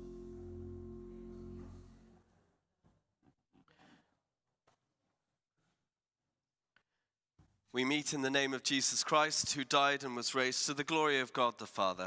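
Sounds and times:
reverberating musical chord: 0:00.0 - 0:02.4.

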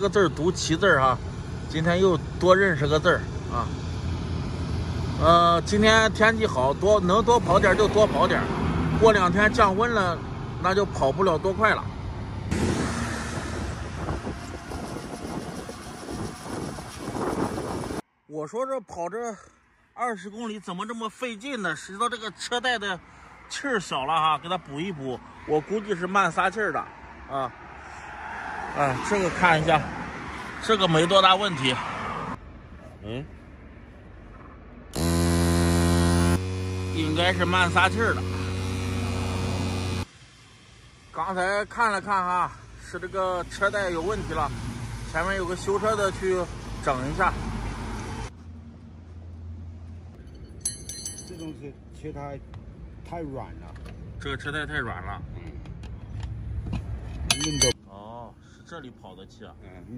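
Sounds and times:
faint street background: 0:00.0 - 0:59.9
road rumble: 0:00.0 - 0:59.9
wind buffeting microphone: 0:12.5 - 0:18.0
air compressor humming: 0:35.0 - 0:37.0.

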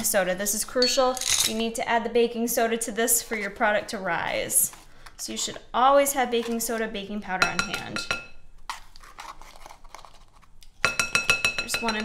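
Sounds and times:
spoon clinking glass bowl: 0:10.8 - 0:12.0.

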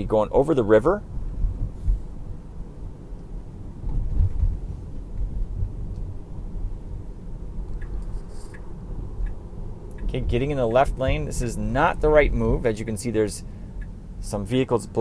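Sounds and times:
tyre and road noise in car: 0:00.4 - 0:15.0
turn signal ticking: 0:07.6 - 0:14.3.

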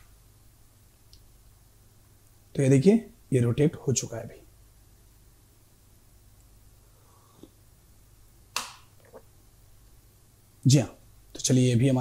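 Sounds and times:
low steady hum: 0:00.0 - 0:12.0
sharp snap-like click: 0:08.5 - 0:08.9.

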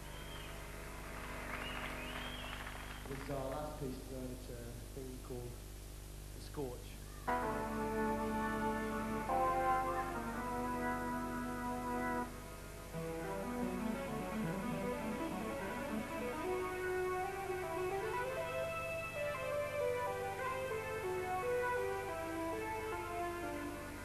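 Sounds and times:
synthesizer chords: 0:07.3 - 0:24.0.

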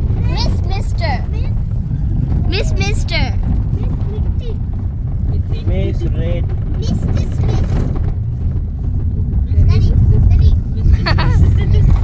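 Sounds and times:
vehicle rumble on road: 0:00.0 - 0:12.0.

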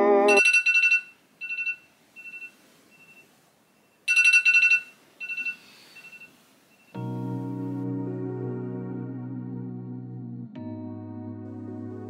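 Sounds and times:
alarm beeping: 0:00.0 - 0:03.2.

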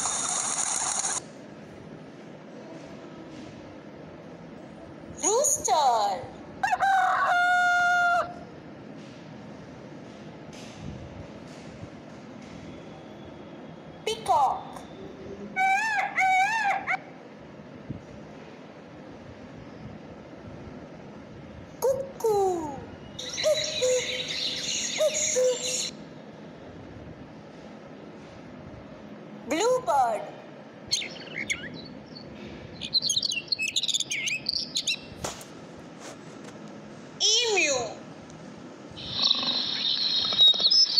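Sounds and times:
bird chirping: 0:23.0 - 0:26.0, 0:30.9 - 0:35.2, 0:39.0 - 0:40.9
peacock calling: 0:23.2 - 0:25.9, 0:39.0 - 0:40.9.

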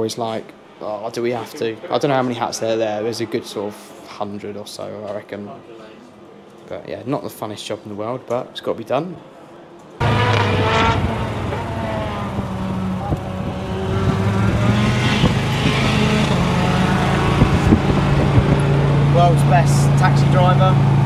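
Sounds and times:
race car engines passing: 0:10.0 - 0:21.0.

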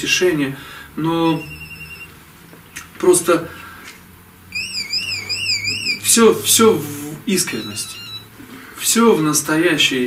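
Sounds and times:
high warbling tone: 0:04.5 - 0:08.3.

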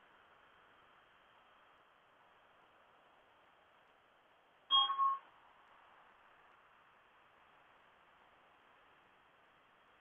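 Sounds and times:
faint steady hiss: 0:00.0 - 0:10.0
two-part electronic chime: 0:04.7 - 0:05.2.

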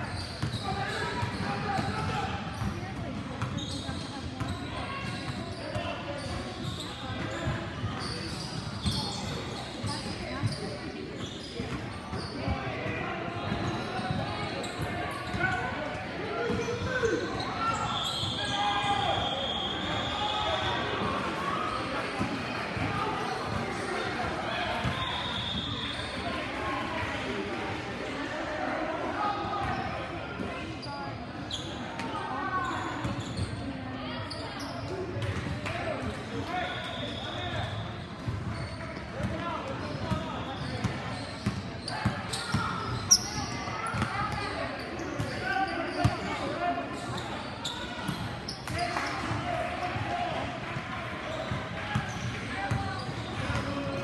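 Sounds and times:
voices echoing in a hall: 0:00.0 - 0:54.0
basketball bouncing on gym court: 0:40.8 - 0:44.3.

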